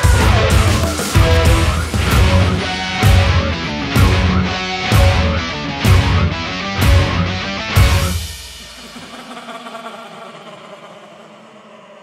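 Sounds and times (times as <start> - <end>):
distorted electric guitar chord ringing: 0.0 - 9.0.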